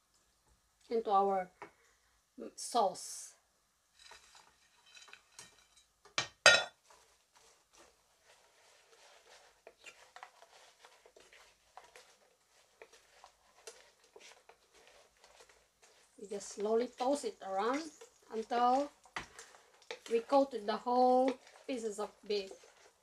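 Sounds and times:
spoon scraping and clattering in pan: 3.9s - 23.0s.

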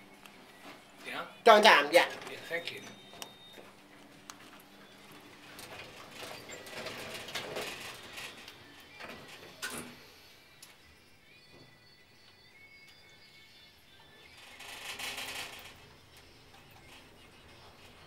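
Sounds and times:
lift doors sliding shut: 5.5s - 10.1s.

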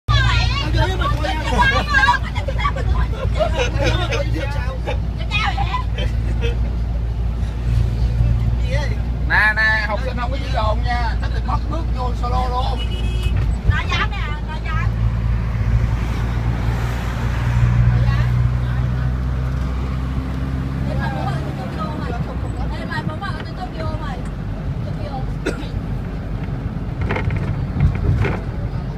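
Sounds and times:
van engine and road rumble: 0.0s - 28.9s
people chatting: 20.8s - 24.2s.

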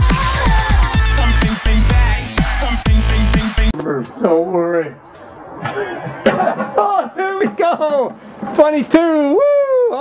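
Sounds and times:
man chuckling: 5.6s - 8.0s
man calling out excitedly: 8.9s - 10.0s.

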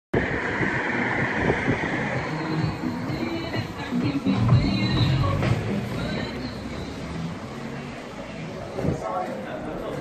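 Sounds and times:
outdoor rumble and hiss: 0.2s - 10.0s.

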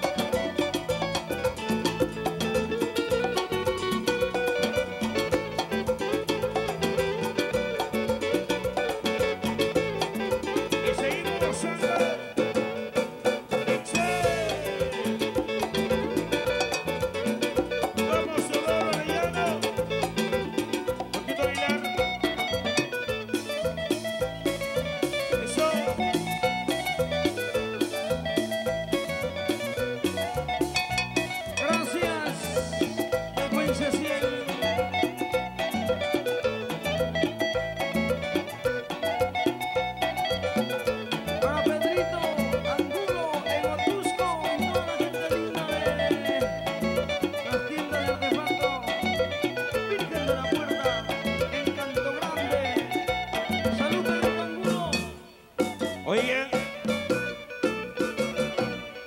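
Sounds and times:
live band playing latin dance music: 0.0s - 59.0s
plucked guitar melody: 0.0s - 59.0s.

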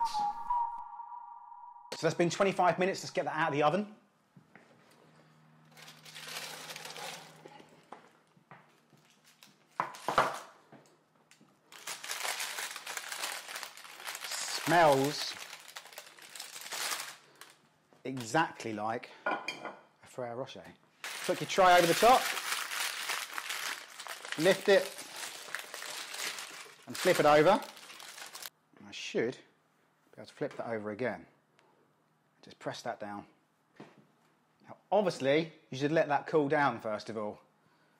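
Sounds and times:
baking paper crinkling: 5.7s - 7.9s, 8.7s - 10.5s, 11.6s - 18.4s, 21.0s - 28.5s.

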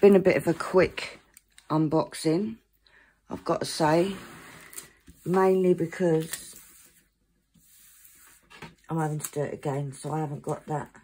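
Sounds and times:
woman speaking: 0.0s - 2.6s, 3.3s - 4.4s, 5.2s - 6.7s, 8.9s - 11.0s
soft rustle: 3.5s - 9.4s.

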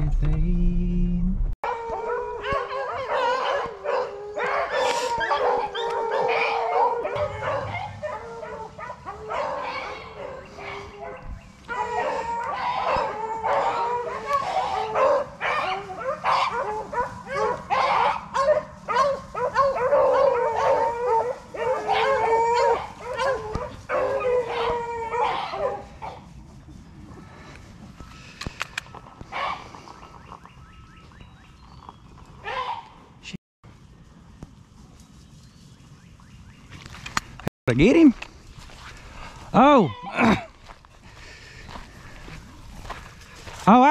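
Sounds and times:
hounds baying and howling: 1.6s - 26.5s, 27.1s - 33.2s, 38.6s - 43.9s.

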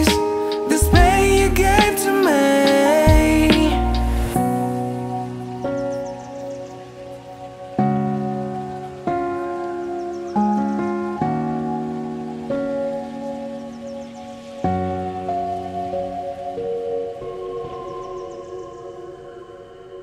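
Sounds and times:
sustained ringing chords: 11.4s - 20.0s.

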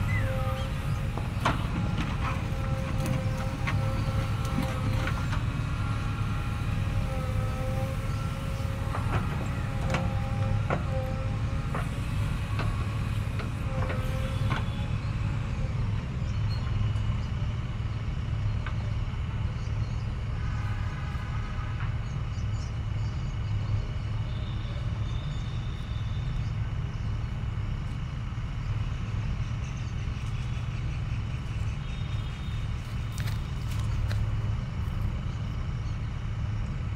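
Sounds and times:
hydraulic whine: 0.0s - 23.0s
diesel engine running: 0.0s - 36.9s.

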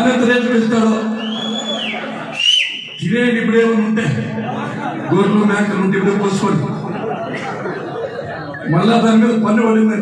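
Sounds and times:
high whistling tone: 1.2s - 3.0s.

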